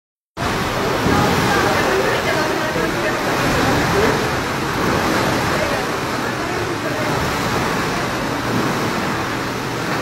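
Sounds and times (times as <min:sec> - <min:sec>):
pool water sloshing: 0:00.4 - 0:10.0.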